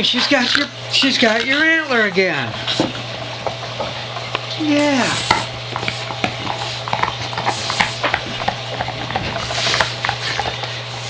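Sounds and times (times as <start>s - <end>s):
dogs chewing antler: 0.0s - 11.0s.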